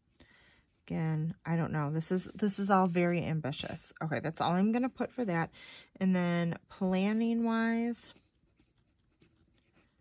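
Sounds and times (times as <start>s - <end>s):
pen scratching on paper: 8.1s - 10.0s.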